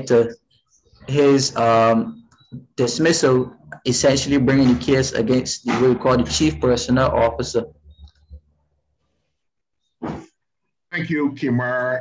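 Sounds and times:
man speaking: 0.0s - 0.4s, 1.0s - 7.8s, 10.9s - 12.0s.

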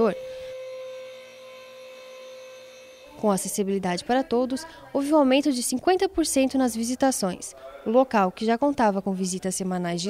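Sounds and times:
platform lift motor humming: 0.0s - 4.0s.

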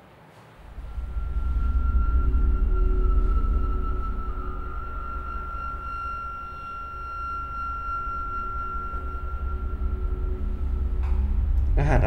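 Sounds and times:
steady low rumble: 0.6s - 12.0s
sustained high tone: 0.6s - 12.0s.

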